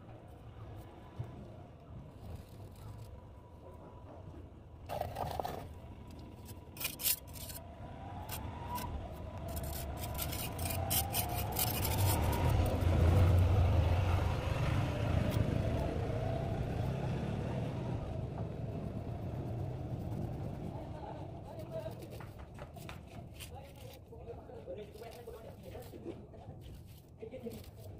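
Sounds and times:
vehicle engine rumble passing: 0.0s - 27.9s.

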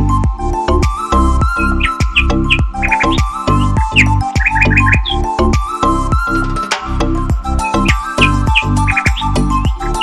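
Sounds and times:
music with steady beat: 0.1s - 10.0s.

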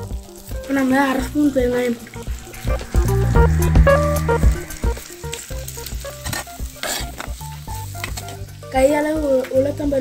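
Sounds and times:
background music: 0.0s - 10.0s
vegetables sizzling in oil: 0.0s - 10.0s.

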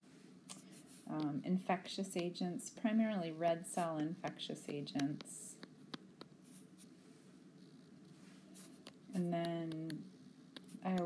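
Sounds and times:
stylus ticking and scraping on touchscreen: 3.8s - 7.0s, 7.6s - 11.0s.

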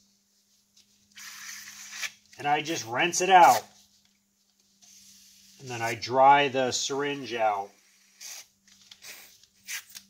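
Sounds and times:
liquid hissing through syringe: 1.2s - 2.2s.

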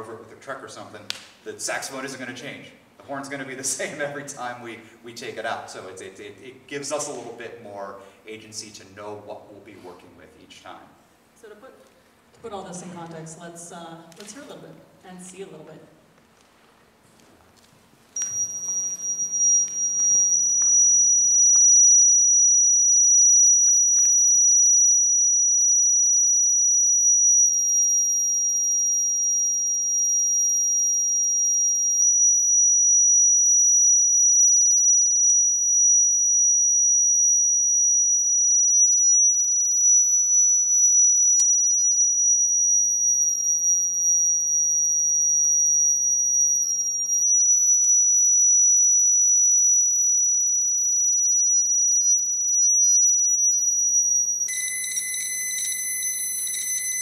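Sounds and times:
high feedback whistle: 18.2s - 57.0s.

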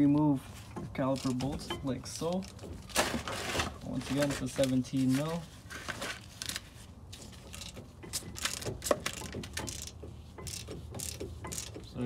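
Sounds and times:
socket ratchet clicking: 7.5s - 11.9s.

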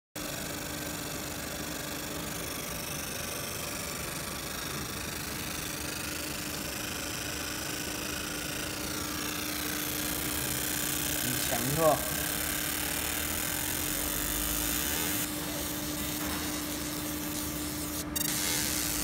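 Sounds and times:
laser marking machine humming: 0.2s - 19.0s.

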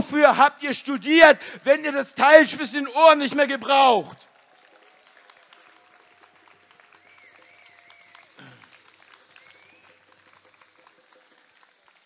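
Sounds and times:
crowd applause: 3.5s - 12.0s.

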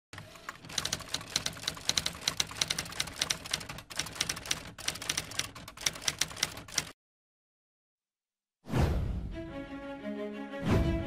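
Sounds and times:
typewriter keystroke clicks: 0.2s - 7.0s.

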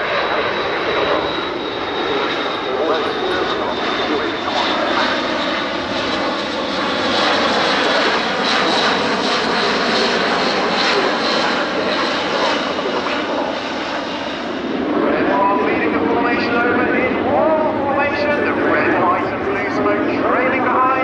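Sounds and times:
turboprop aircraft flying past: 0.0s - 21.0s.

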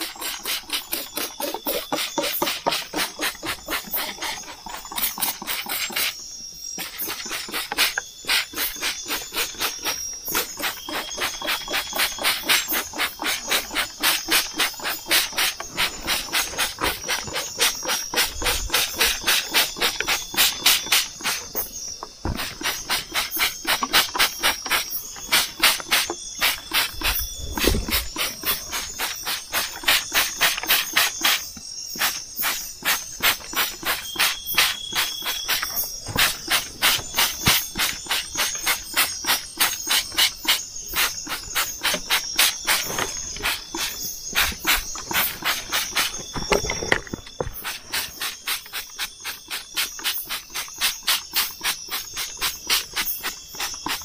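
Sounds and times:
trigger sprayer spurts: 0.0s - 6.2s, 6.8s - 54.0s
insects trilling: 0.0s - 54.0s.

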